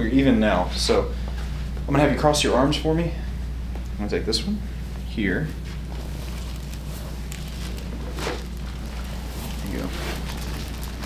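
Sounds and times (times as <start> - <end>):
steady low hum: 0.0 - 11.0
clothing rustling: 5.6 - 11.0.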